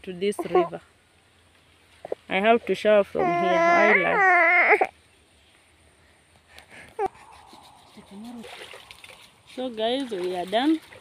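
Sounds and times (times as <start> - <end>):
river water splashing and trickling: 7.0 - 11.0.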